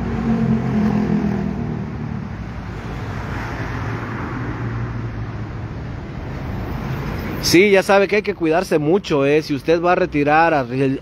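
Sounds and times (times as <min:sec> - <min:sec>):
car driving by: 0:00.0 - 0:05.1
road and traffic noise: 0:00.0 - 0:11.0.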